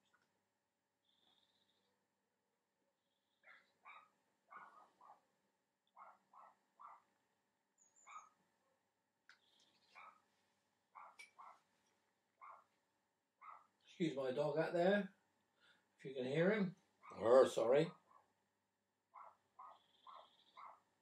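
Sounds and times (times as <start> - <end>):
faint dog barking outside: 3.3 - 7.2, 8.0 - 8.9, 9.8 - 13.8, 17.0 - 18.4, 19.1 - 21.0.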